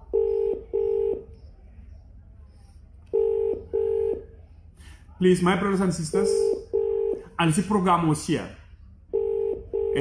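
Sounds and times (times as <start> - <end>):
telephone ringback tone: 0.0 - 1.4, 3.1 - 4.3, 6.4 - 7.2, 9.1 - 10.0.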